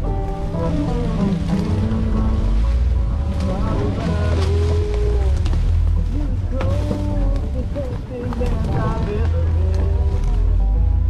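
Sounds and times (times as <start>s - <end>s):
engine low rumble: 0.0s - 11.0s.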